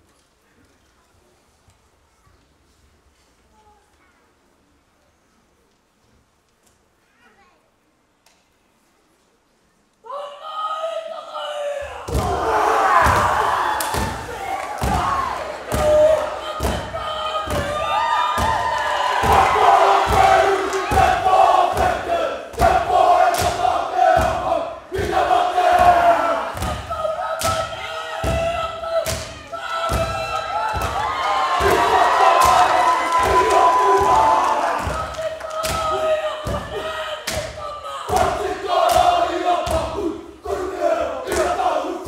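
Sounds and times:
group shouting and chanting: 10.1s - 42.0s
rhythmic stamping and body slaps: 12.1s - 41.7s.

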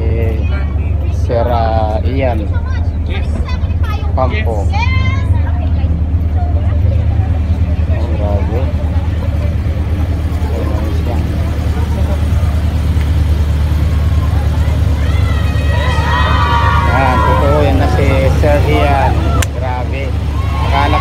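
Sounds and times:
car engine idling: 0.0s - 21.0s
people's voices: 0.0s - 21.0s.

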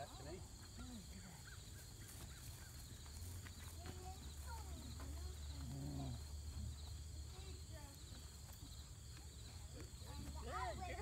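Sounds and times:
pulsing insect chorus: 0.0s - 11.0s.

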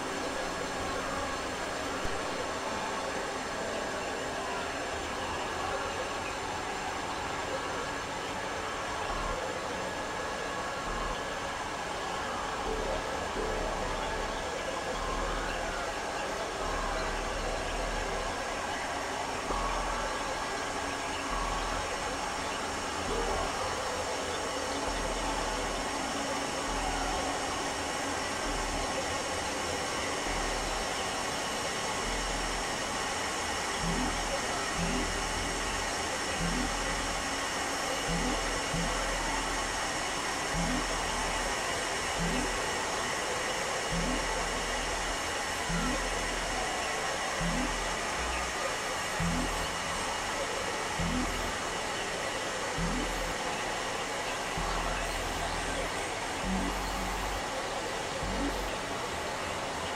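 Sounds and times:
dense steady hiss: 0.0s - 59.9s
synthesizer noise drone: 0.0s - 59.9s
low hum: 38.0s - 42.9s, 43.9s - 59.7s.

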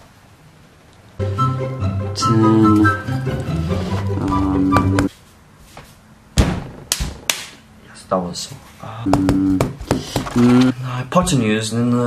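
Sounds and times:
sharp thumps: 6.4s - 7.6s.

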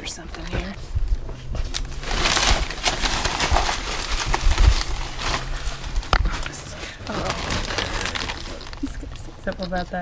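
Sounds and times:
plastic bag rustling: 0.0s - 10.0s.

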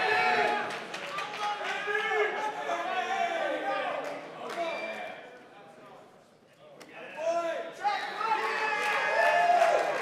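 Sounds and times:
voices echoing in a hall: 0.0s - 10.0s.

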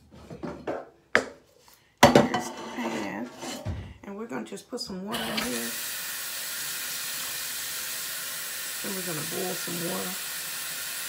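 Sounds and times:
faucet running: 5.1s - 11.0s
water splashing into saucepan: 5.1s - 11.0s.

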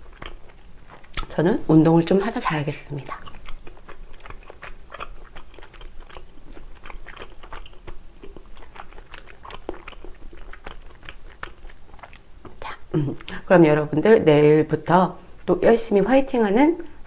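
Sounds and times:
close chewing of food: 0.0s - 14.0s.

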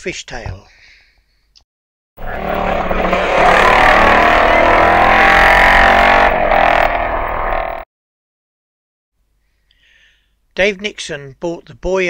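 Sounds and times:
motorcycle engine at high revs: 2.2s - 7.8s.

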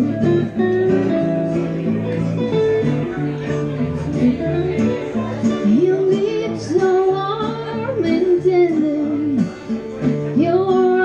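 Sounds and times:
acoustic guitar: 0.0s - 11.0s
electric guitar: 0.0s - 11.0s
woman singing: 5.6s - 9.6s, 10.4s - 11.0s.

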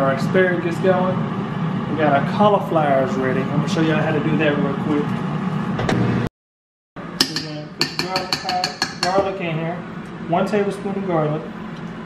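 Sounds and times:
utensils clicking on dishes: 7.2s - 9.2s.

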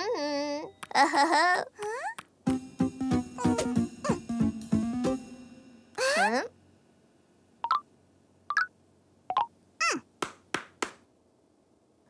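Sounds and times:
cartoon falling tone: 3.4s - 4.3s.

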